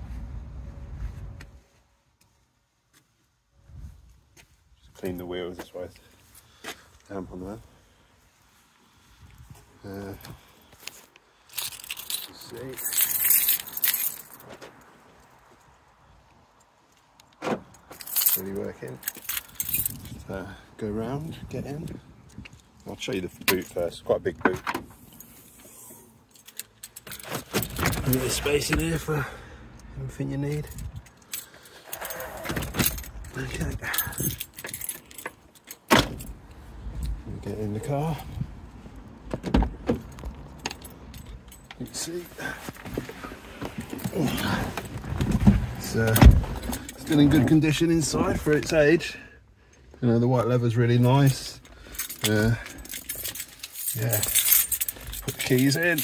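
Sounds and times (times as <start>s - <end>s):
keys jingling: 11.5s - 14.6s, 17.7s - 20.3s, 25.0s - 29.3s, 30.4s - 37.2s, 39.8s - 43.0s, 51.2s - 56.0s
handling noise: 39.2s - 47.8s, 51.2s - 56.0s.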